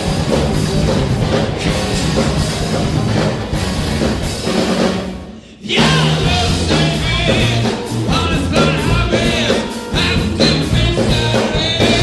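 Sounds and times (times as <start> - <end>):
bass guitar: 0.0 - 12.0
drum kit with cymbals: 0.0 - 12.0
electric guitar: 0.0 - 12.0.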